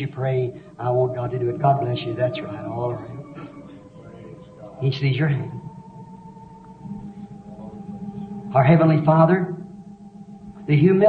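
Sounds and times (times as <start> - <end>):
sustained chord of held tones: 0.0 - 11.0.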